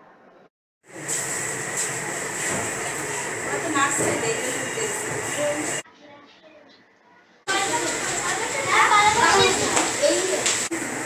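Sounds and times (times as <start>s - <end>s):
children chattering: 3.5s - 10.7s
high child voice: 7.5s - 10.5s.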